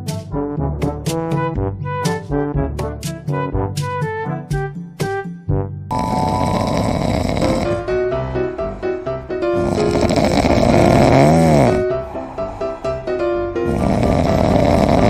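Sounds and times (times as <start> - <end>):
background music: 0.0 - 15.0
cat snoring: 5.9 - 7.9, 9.6 - 11.8, 13.6 - 15.0.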